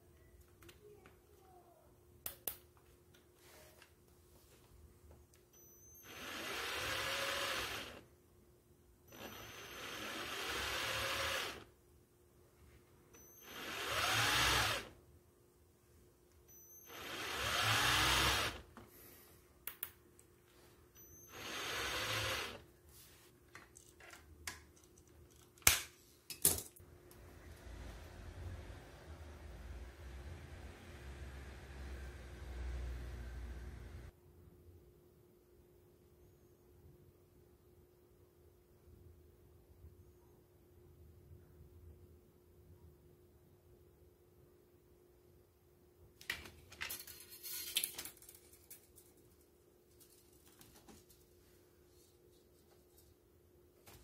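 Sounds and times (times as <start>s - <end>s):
cordless drill motor whine: 5.6s - 8.0s, 9.1s - 11.7s, 13.2s - 14.9s, 16.5s - 18.7s, 21.0s - 22.6s.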